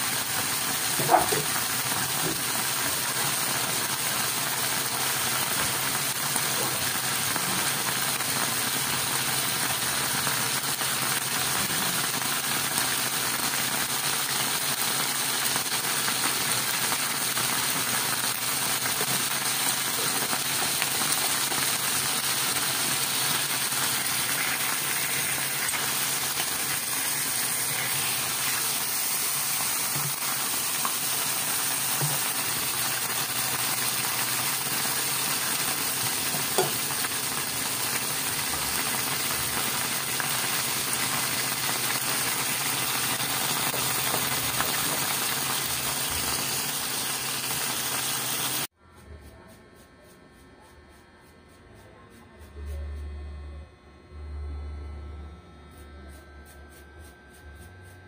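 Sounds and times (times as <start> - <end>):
squid sizzling in oil: 0.0 - 48.7.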